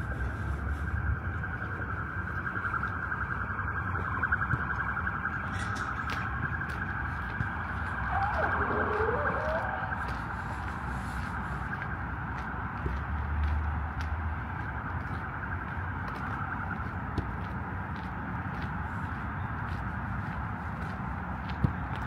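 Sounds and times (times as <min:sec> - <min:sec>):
pulsing electronic siren: 0:00.0 - 0:21.2
low rumble of traffic: 0:00.0 - 0:22.0
low tone sliding down and up: 0:08.1 - 0:10.0.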